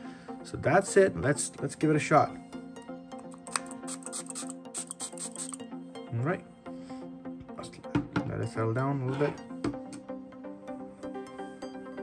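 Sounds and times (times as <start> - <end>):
soft background music: 0.0 - 12.0
perfume atomizer spritzes: 3.3 - 5.6.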